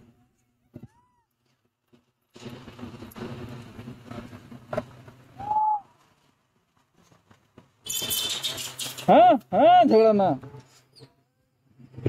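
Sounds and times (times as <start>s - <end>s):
monkey whistle-like coo call: 5.4s - 5.9s.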